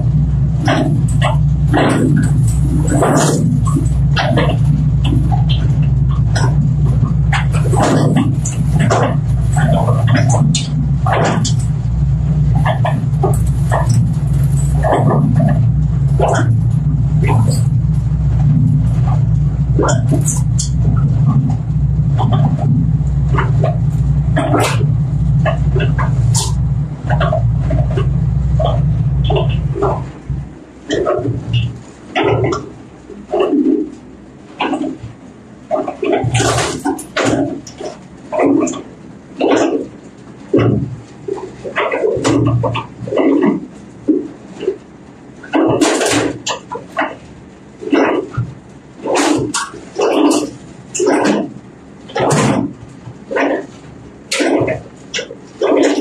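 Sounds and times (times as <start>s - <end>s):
machine humming: 0.0s - 56.0s.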